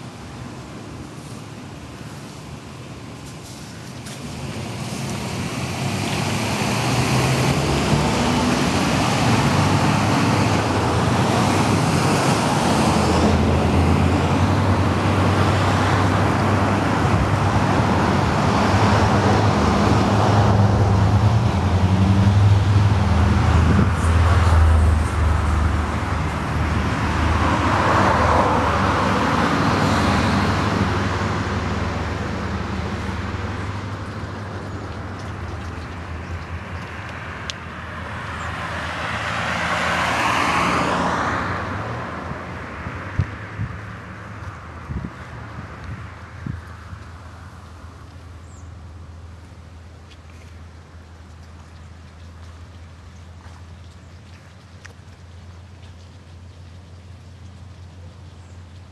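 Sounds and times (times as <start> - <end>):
road traffic noise: 0.0 - 58.9
vehicle engine hum: 0.0 - 58.9.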